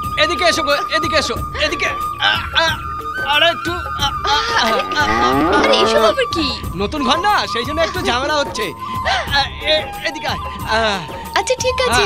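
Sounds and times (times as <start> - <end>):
cow mooing: 4.8 - 6.2.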